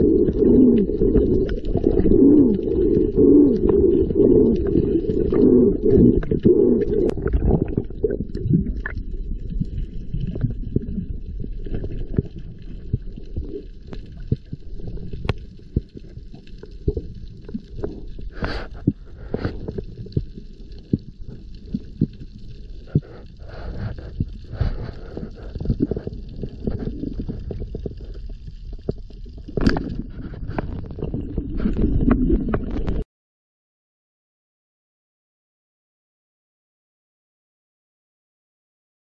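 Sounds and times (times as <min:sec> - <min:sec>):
muffled underwater rumble: 0:00.0 - 0:33.0.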